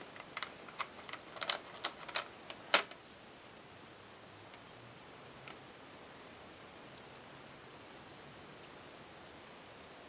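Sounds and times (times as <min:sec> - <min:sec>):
plastic toys clicking and clacking: 0:00.2 - 0:03.0.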